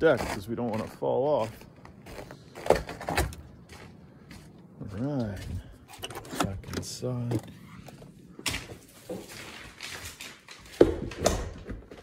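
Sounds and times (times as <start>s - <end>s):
footsteps on wooden deck: 0.0s - 12.0s.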